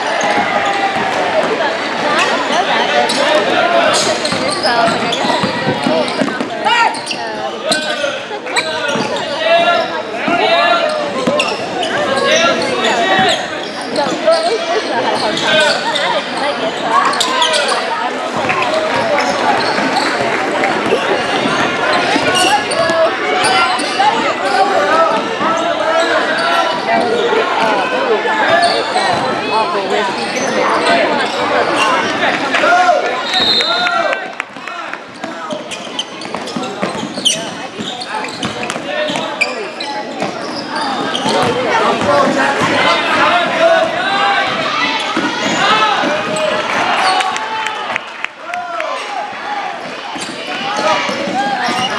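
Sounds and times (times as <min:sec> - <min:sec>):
people shouting in gym: 0:00.0 - 0:51.9.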